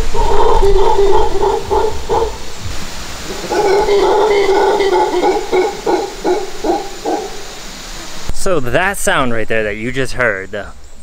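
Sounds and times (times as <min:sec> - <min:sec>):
howler monkey grunting: 0:00.0 - 0:08.1.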